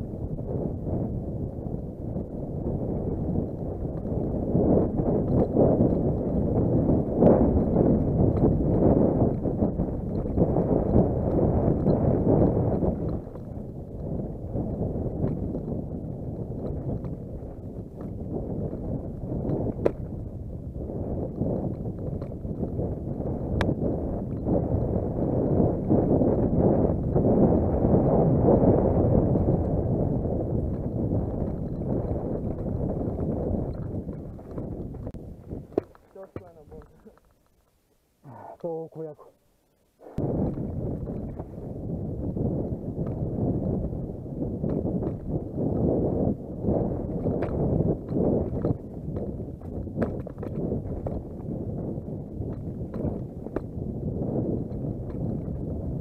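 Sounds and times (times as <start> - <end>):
wind buffeting microphone: 0.0 - 56.0
mountain bike rattling over rocks: 2.7 - 20.3, 21.2 - 23.2, 28.6 - 37.8, 40.3 - 56.0.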